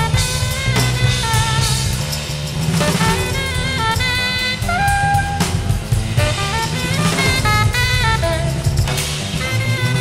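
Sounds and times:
drums: 0.0s - 10.0s
saxophone playing: 0.0s - 10.0s
upright bass: 0.0s - 10.0s.

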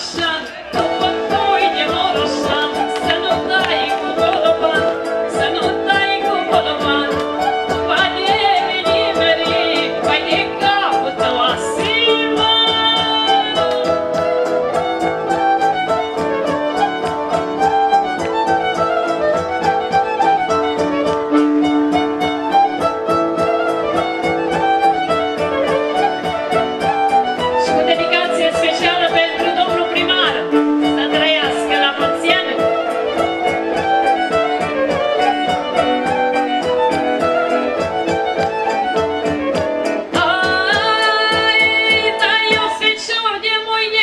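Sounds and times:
folk band violin melody: 0.0s - 44.0s
woman singing: 0.0s - 44.0s.

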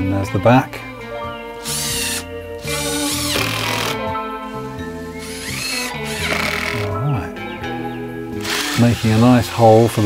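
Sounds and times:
background music: 0.0s - 10.0s
cordless driver whining: 1.6s - 7.0s, 8.3s - 9.5s.

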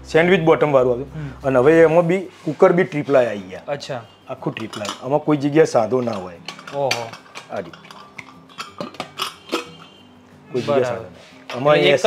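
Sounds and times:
metal cookware clicking and knocking: 4.4s - 10.0s.

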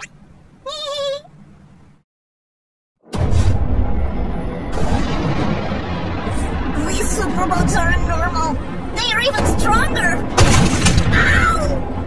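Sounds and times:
high-pitched cartoon voice: 0.0s - 1.3s.

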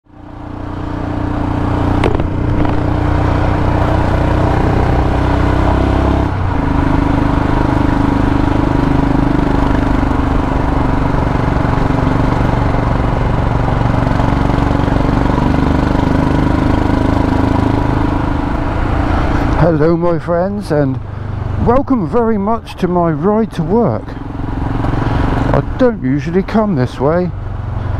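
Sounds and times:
road and wind noise: 0.0s - 27.9s
motorcycle engine running: 0.1s - 20.4s, 22.8s - 27.9s.

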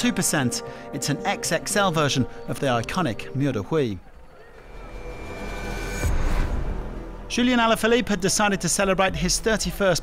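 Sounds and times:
high-pitched whine: 2.8s - 7.4s.

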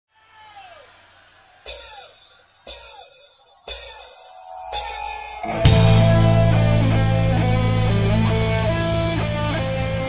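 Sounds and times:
crash cymbal and kick drum hits: 1.7s - 10.0s.

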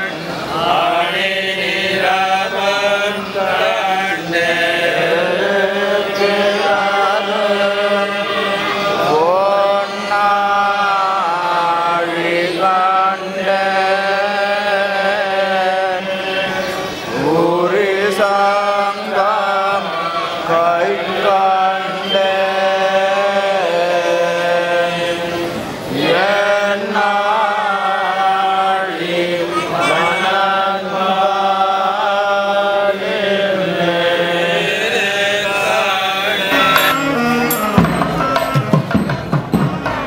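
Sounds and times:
voices chanting devotional verses: 0.0s - 40.0s.

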